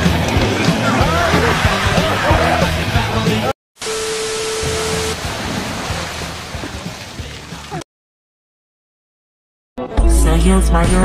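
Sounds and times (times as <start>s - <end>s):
water rushing and splashing: 3.8s - 7.8s.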